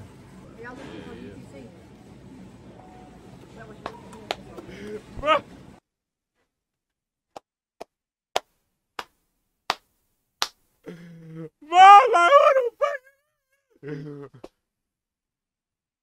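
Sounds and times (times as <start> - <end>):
man laughing hard: 11.7 - 13.0, 13.8 - 14.4.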